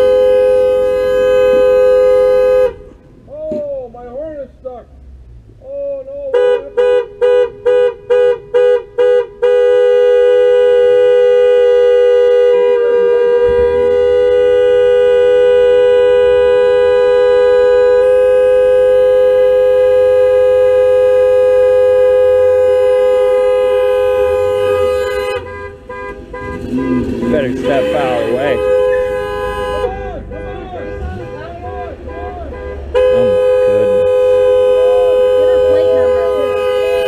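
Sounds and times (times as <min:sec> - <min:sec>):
two-tone horn blasts: 0:00.0 - 0:03.1, 0:06.3 - 0:37.0.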